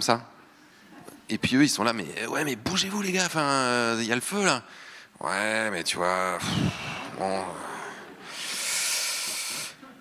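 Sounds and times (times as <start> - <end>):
man's hissing exhalation: 6.5 - 9.8.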